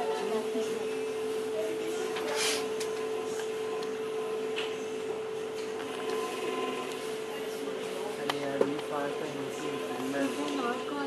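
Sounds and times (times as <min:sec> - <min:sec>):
faint background voices: 0:00.0 - 0:11.0
steady machine hum: 0:00.0 - 0:11.0.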